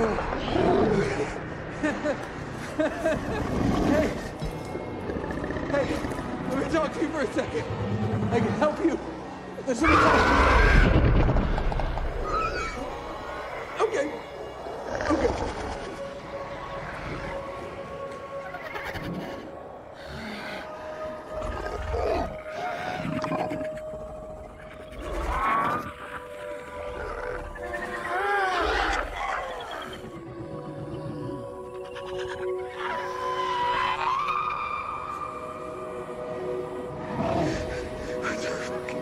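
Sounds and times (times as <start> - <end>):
sustained low film score notes: 0.0 - 10.0, 10.8 - 39.0.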